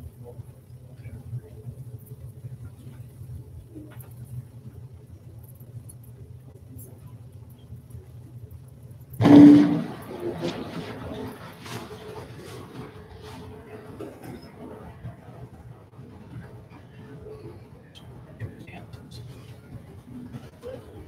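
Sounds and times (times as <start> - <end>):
faint scattered small noises: 0.0 - 21.0
sudden loud burst: 9.2 - 10.8.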